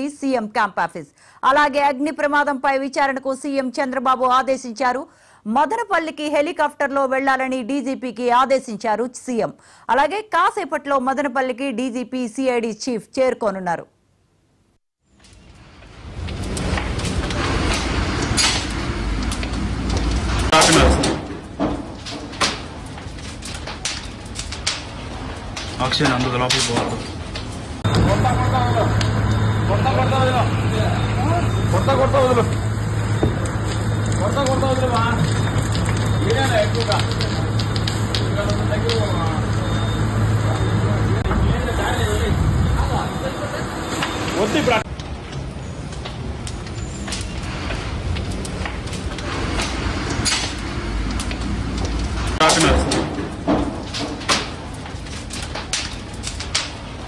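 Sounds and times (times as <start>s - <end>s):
fire cracks and knocks: 15.0s - 57.0s
low rumble: 27.2s - 45.6s
loud noisy burst: 27.8s - 44.8s.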